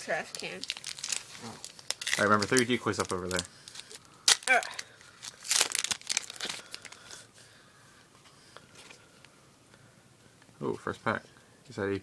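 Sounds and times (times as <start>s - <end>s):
foil wrapper crinkling and tearing: 0.2s - 7.2s
cards handling: 0.9s - 7.1s.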